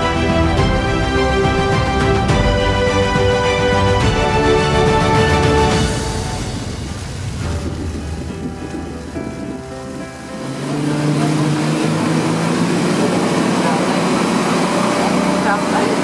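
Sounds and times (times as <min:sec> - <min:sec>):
background music: 0:00.0 - 0:16.0
speedboat engine drone: 0:00.0 - 0:16.0
water rushing from boat hull: 0:00.0 - 0:16.0.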